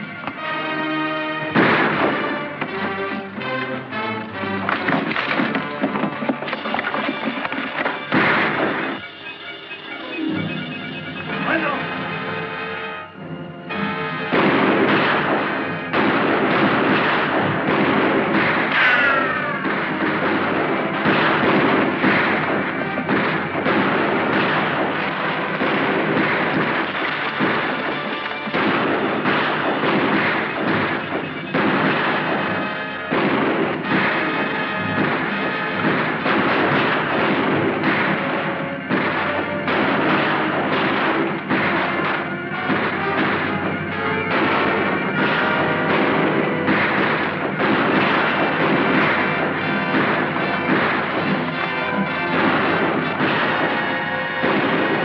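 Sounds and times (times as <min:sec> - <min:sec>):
orchestral film score: 0:00.0 - 0:55.0
rapid gunshots: 0:01.4 - 0:09.9, 0:11.2 - 0:12.5, 0:14.1 - 0:55.0.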